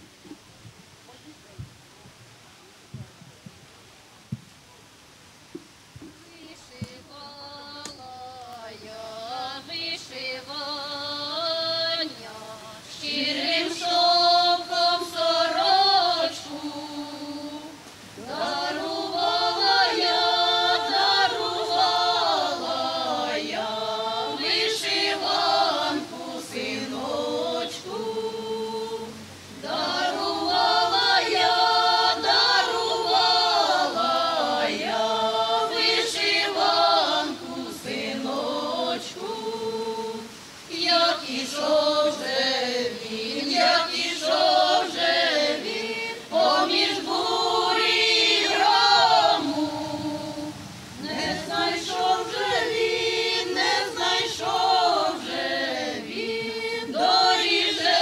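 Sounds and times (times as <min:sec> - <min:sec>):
women's choir singing unaccompanied: 0:06.0 - 0:58.0.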